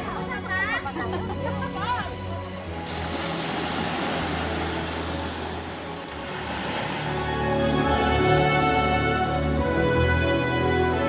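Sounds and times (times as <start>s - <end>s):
background music: 0.0s - 11.0s
small waves breaking on shore: 2.5s - 8.8s.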